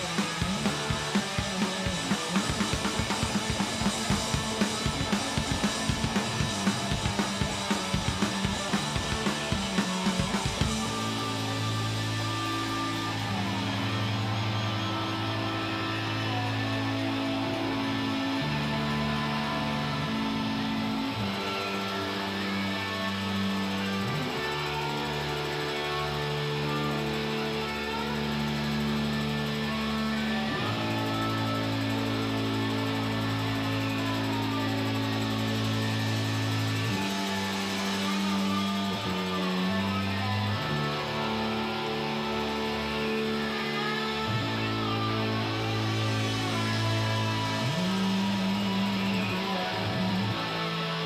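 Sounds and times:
rock band droning chords: 0.0s - 51.0s.

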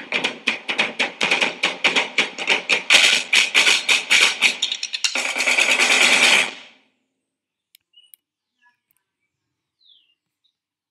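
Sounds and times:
fast drum roll: 0.0s - 6.6s.

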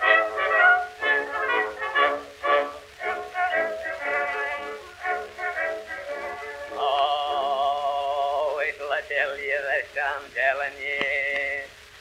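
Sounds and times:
old cylinder record music: 0.0s - 12.0s.

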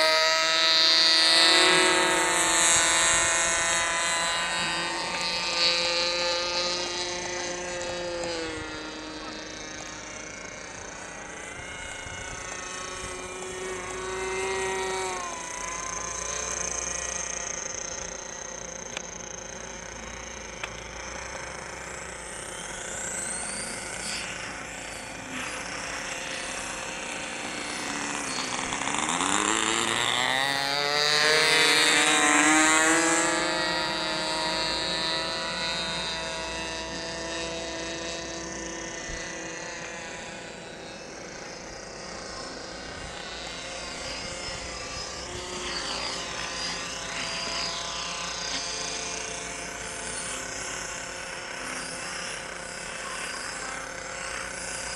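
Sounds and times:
model airplane engine buzzing: 0.0s - 54.9s.

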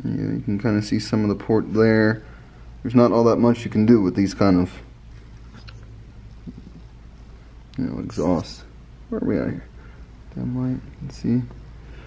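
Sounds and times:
faint background hiss: 0.0s - 12.0s
steady low hum: 0.0s - 12.0s.

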